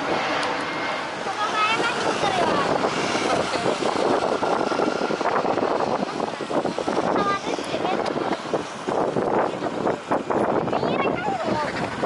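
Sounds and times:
jet engines rushing: 0.0 - 12.0
wind on microphone: 0.0 - 12.0.

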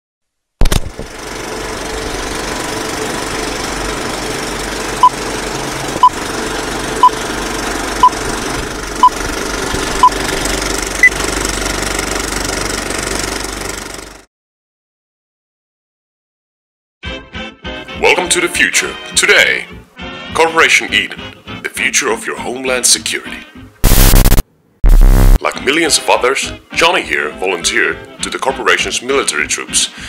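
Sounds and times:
projector starting thump: 0.6 - 1.3
film projector rattle: 0.6 - 14.2.

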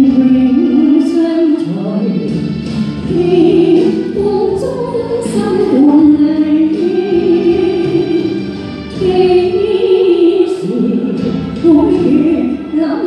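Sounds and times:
backing music: 0.0 - 13.0
woman singing ballad: 0.0 - 13.0.

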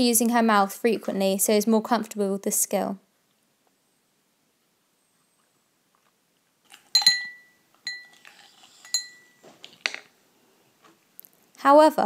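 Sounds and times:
drinking glass clinking: 6.9 - 8.2, 8.8 - 9.4.

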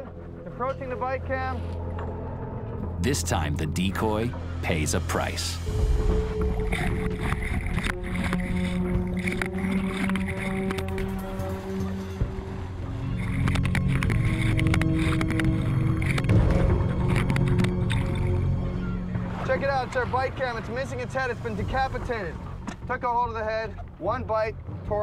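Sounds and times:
dramatic score with low notes: 0.0 - 25.0
water churning and splashing: 5.7 - 22.9
sharp splashes and knocks: 6.0 - 11.9, 13.2 - 19.9.

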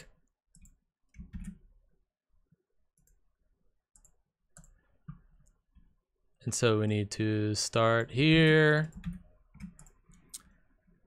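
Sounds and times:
keyboard and mouse clicks: 0.5 - 1.6, 3.9 - 5.6, 8.4 - 10.6.

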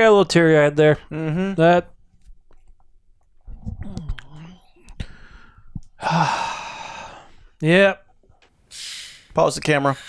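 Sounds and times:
man murmuring: 1.0 - 1.9.

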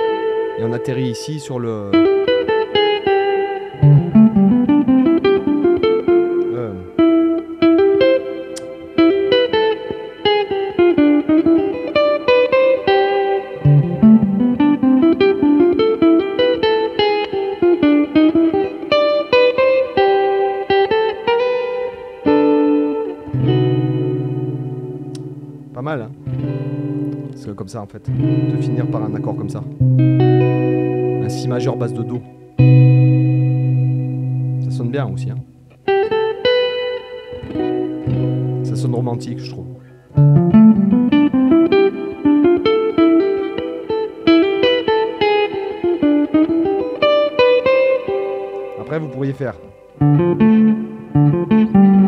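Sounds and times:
electric guitar jazz lines: 0.0 - 52.0
ringing guitar chord: 0.0 - 52.0.

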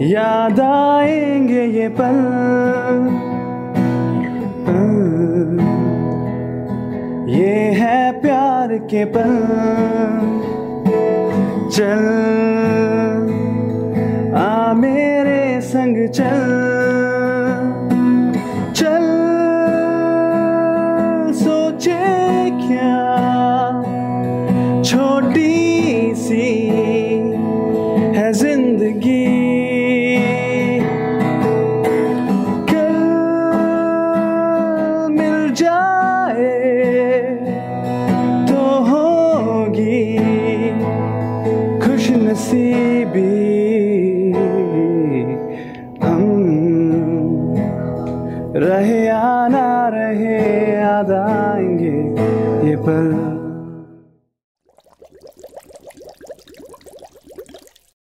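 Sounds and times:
acoustic guitar: 0.0 - 54.2
person singing slow melody: 4.2 - 6.3.

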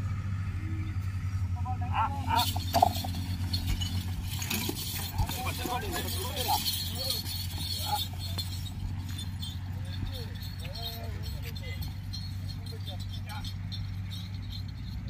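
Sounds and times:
men calling out: 1.5 - 14.2.

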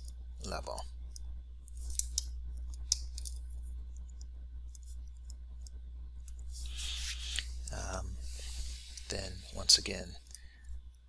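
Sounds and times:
steady low hum: 0.0 - 11.0
stylus tapping and scratching on screen: 0.0 - 11.0.

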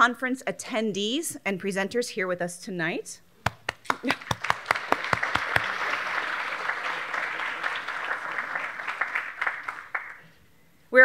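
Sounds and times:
audience applauding: 3.5 - 10.3.

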